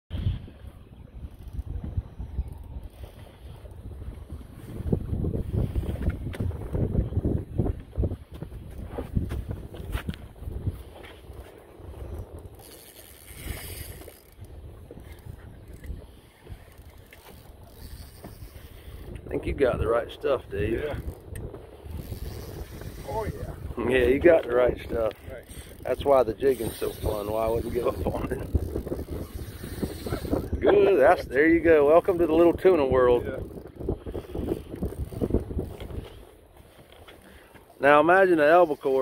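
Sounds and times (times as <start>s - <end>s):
wind buffeting microphone: 0.1s - 39.0s
fishing tackle clicks: 12.4s - 16.0s, 16.6s - 19.3s.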